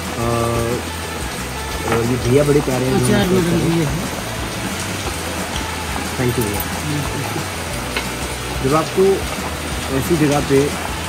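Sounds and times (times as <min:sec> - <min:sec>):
steady rain hiss: 0:00.0 - 0:11.0.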